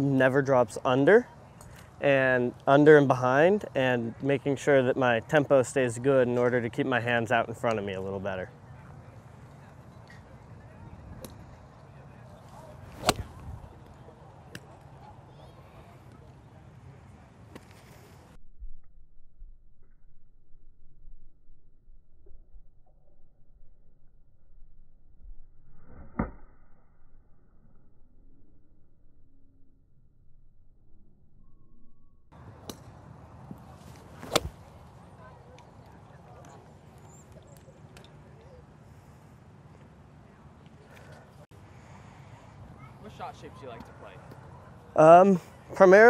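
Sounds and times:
distant golf club striking ball: 0:13.0 - 0:13.4, 0:34.2 - 0:34.6.

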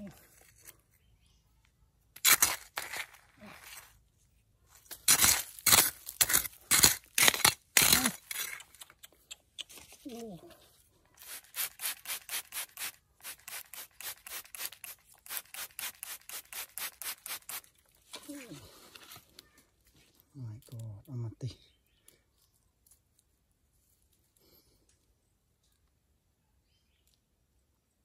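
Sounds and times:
trowel scraping dry soil: 0:00.0 - 0:01.1, 0:02.2 - 0:04.1, 0:04.7 - 0:10.4, 0:11.1 - 0:19.6
spray bottle squirts: 0:11.2 - 0:17.7.

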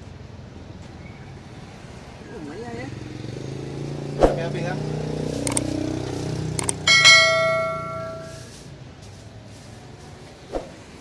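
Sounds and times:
metal object struck and ringing: 0:06.6 - 0:08.5.

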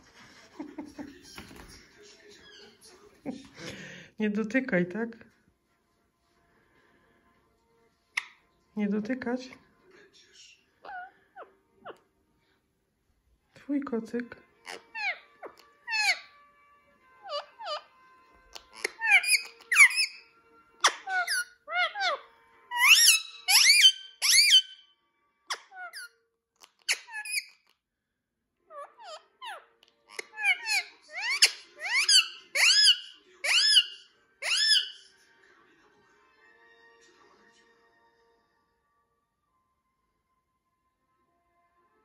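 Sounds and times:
parakeet shrill squawks: 0:10.8 - 0:12.0, 0:14.6 - 0:16.4, 0:17.2 - 0:24.9, 0:25.5 - 0:27.7, 0:28.7 - 0:35.1.

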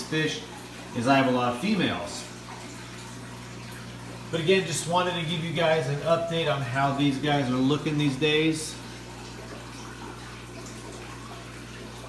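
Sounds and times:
aquarium filter water splashing: 0:00.0 - 0:12.0
low steady hum: 0:00.0 - 0:12.0.

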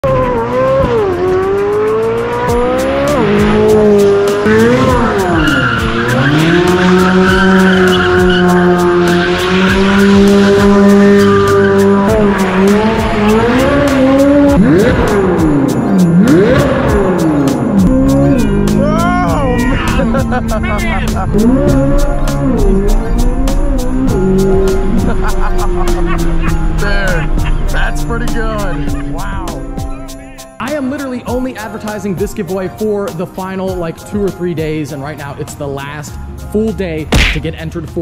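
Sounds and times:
car engine revving hard: 0:00.0 - 0:30.2
tires squealing: 0:00.0 - 0:31.1.

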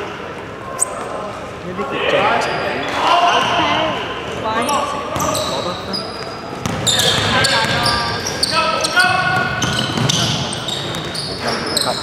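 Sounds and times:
sneakers squeaking: 0:00.6 - 0:01.4, 0:02.3 - 0:12.0
players calling out: 0:01.9 - 0:12.0
basketball bouncing on wooden floor: 0:06.6 - 0:07.8, 0:09.4 - 0:11.1.

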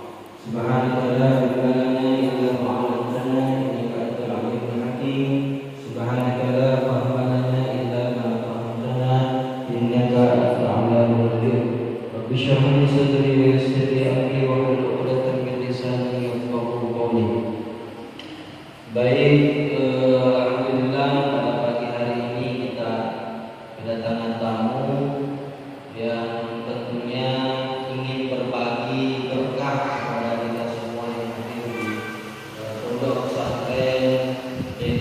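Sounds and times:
man chanting through microphone: 0:00.0 - 0:18.1, 0:18.8 - 0:35.0.

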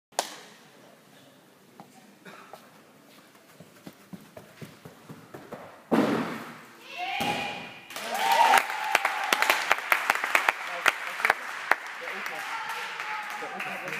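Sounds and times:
light running footfalls: 0:02.6 - 0:05.8
loud springboard thuds: 0:05.9 - 0:07.8
spectators clapping: 0:07.9 - 0:13.9.

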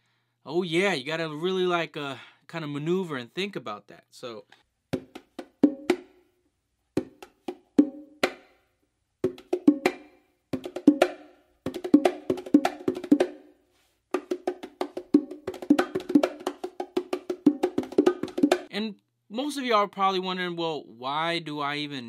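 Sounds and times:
bongos played by hand: 0:04.9 - 0:06.2, 0:07.0 - 0:08.6, 0:09.2 - 0:13.5, 0:14.1 - 0:18.7.

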